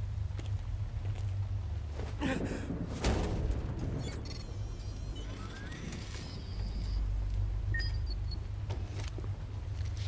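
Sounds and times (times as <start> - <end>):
low ambient rumble: 0.0 - 10.0.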